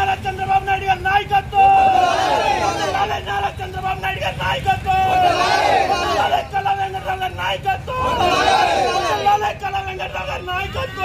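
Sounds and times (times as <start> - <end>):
men shouting slogans in unison: 1.4 - 3.7, 4.3 - 9.6.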